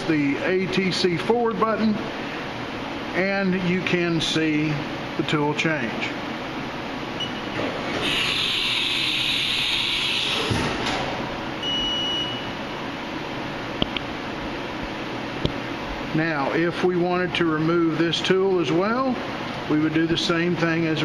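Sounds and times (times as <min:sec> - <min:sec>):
machine hum: 0:00.0 - 0:21.0
air hiss: 0:08.0 - 0:10.7.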